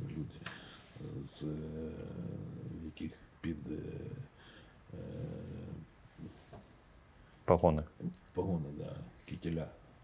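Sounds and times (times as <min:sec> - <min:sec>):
faint low murmurs: 0:00.0 - 0:06.5.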